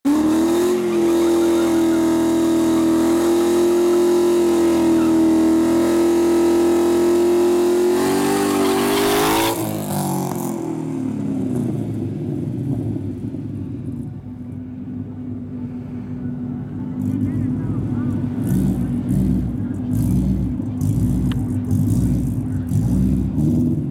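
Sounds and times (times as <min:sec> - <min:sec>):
car engine revving: 0:00.1 - 0:14.3, 0:16.4 - 0:23.9.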